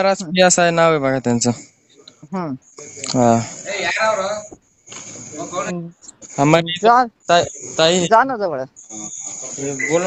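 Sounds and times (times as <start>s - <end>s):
voices talking over phone: 0.0s - 10.0s.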